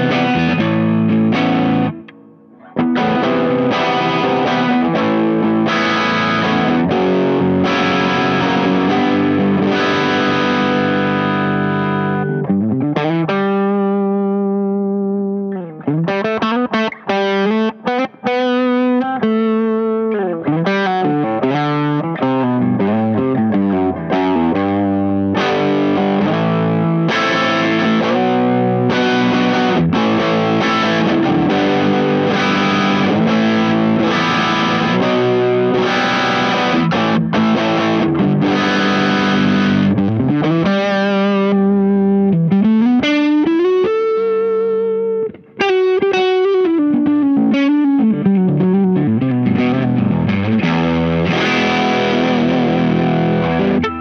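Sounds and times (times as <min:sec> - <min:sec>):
overdriven electric guitar: 0:00.0 - 0:54.0.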